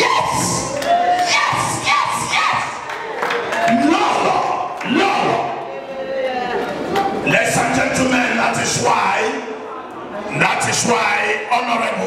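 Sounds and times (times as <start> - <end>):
crowd cheering and shouting: 0.0 - 9.7.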